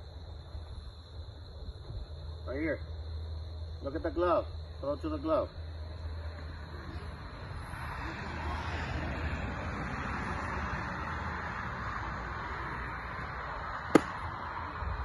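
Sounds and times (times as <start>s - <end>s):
steady background noise: 0.0s - 15.0s
baseball smacking into glove: 13.9s - 14.3s.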